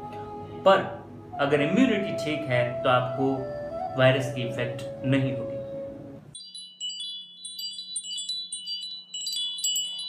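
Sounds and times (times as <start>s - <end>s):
music: 0.0s - 6.4s
tinkling wind chime notes: 6.4s - 10.0s.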